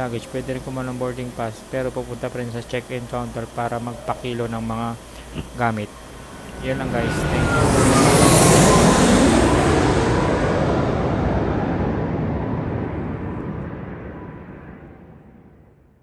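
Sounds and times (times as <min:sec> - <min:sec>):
faint whine: 0:00.0 - 0:16.0
loud rushing rumble: 0:06.0 - 0:15.6.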